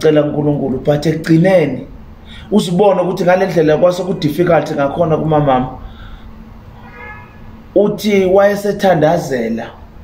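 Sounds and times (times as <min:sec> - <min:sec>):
faint high-pitched tone: 0:06.7 - 0:07.6.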